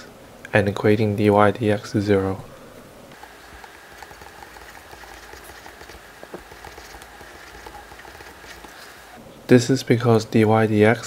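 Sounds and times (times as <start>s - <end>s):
faint electrical hum: 0.0s - 11.0s
stylus scratching on drawing tablet: 3.2s - 9.2s.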